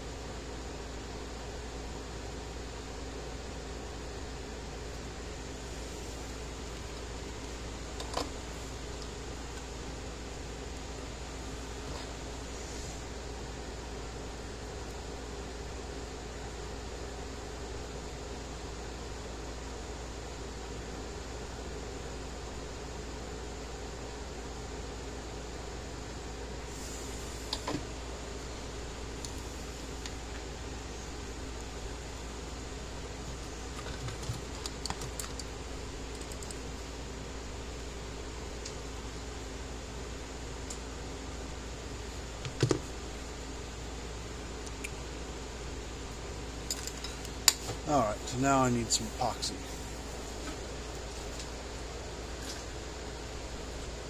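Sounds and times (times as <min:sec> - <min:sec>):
workshop room hum and hiss: 0:00.0 - 0:54.0.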